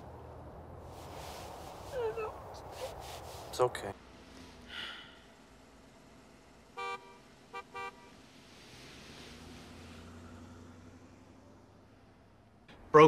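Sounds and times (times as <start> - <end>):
horn honking: 6.7 - 8.3.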